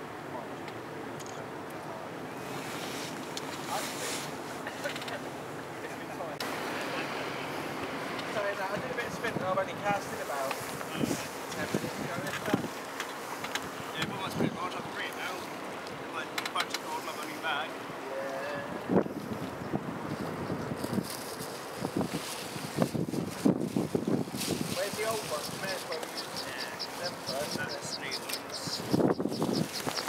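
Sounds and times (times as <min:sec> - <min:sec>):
people talking: 0:03.6 - 0:07.5, 0:08.3 - 0:12.7, 0:13.9 - 0:15.5, 0:16.1 - 0:18.8, 0:24.7 - 0:29.0
wind buffeting microphone: 0:08.5 - 0:13.0, 0:13.6 - 0:15.1, 0:18.6 - 0:30.0
rapid high ticking: 0:24.9 - 0:30.0.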